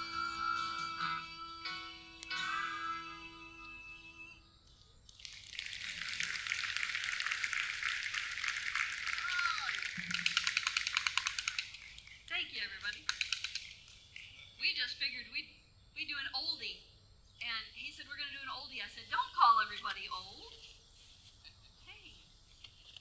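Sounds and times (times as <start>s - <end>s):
voices: 0.0s - 3.9s, 8.1s - 10.4s, 11.2s - 22.3s
audience applauding: 5.2s - 12.1s.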